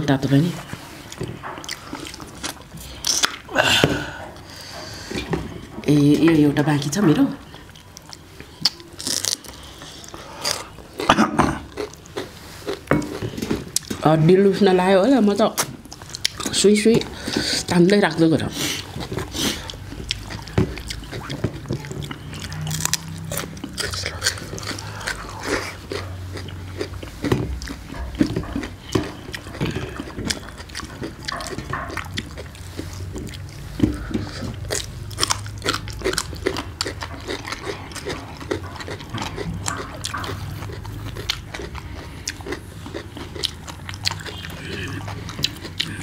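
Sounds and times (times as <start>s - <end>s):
chewing and mouth clicks: 0.6s - 3.5s, 4.2s - 14.0s, 15.4s - 46.0s.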